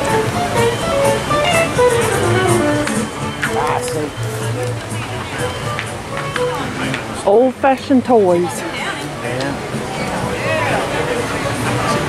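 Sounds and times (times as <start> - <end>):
plucked guitar melody: 0.0 - 12.0.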